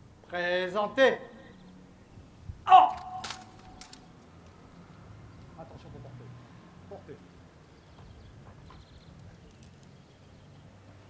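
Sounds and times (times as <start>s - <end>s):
person shouting command: 2.7s - 3.5s
rifles clicking and slapping: 2.8s - 4.6s.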